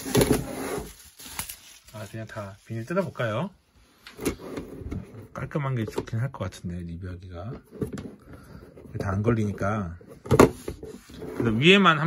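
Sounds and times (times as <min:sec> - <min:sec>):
plastic film rustling and crackling: 0:00.0 - 0:03.5.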